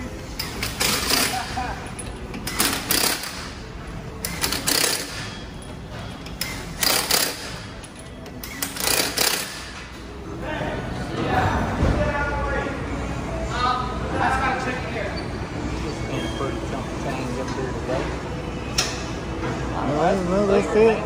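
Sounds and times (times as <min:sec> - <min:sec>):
impact wrench hammering: 0:02.4 - 0:03.6, 0:04.2 - 0:05.4, 0:06.3 - 0:09.9.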